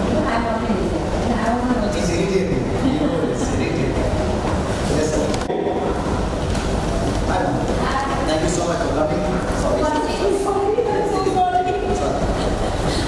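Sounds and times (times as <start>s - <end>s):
indistinct chatter of voices: 0.0s - 13.0s.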